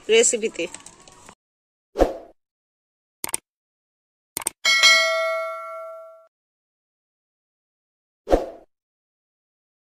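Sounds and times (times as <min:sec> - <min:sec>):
bell-like notification ding: 0:04.7 - 0:06.3.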